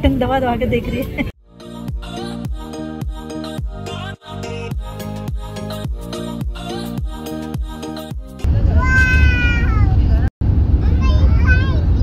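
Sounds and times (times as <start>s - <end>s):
girl exclaiming: 8.8s - 10.0s.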